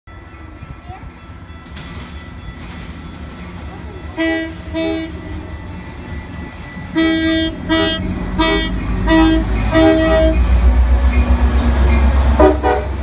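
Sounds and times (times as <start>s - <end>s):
train rumbling: 0.1s - 13.0s
locomotive air horn blasts: 4.2s - 5.2s, 6.9s - 10.5s, 12.4s - 13.0s.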